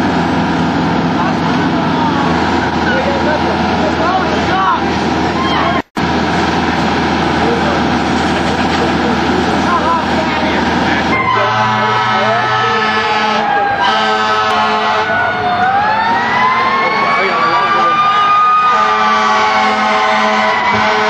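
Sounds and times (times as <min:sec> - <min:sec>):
diesel engine running at high revs: 0:00.0 - 0:21.0
crowd voices: 0:01.1 - 0:21.0.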